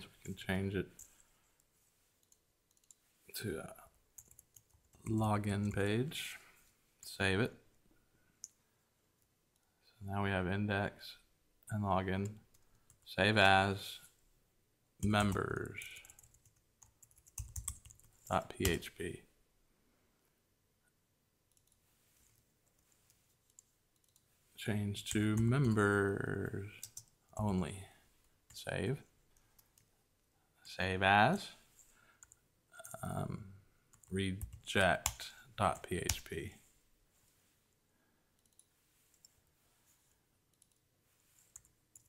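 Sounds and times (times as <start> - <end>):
keyboard and mouse clicks: 2.2 - 3.0, 38.4 - 39.3.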